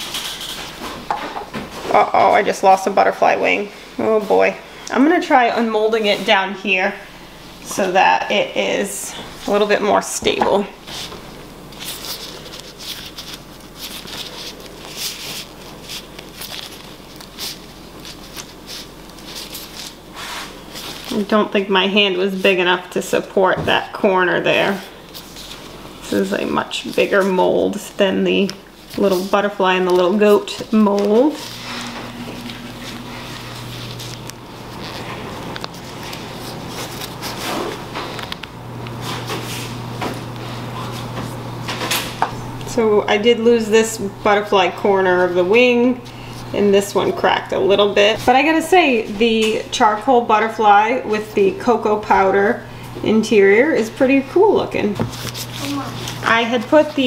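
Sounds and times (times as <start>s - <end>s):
steady low hum: 0.0s - 57.0s
gloves rustling on silicone mold: 5.1s - 41.6s, 42.5s - 57.0s.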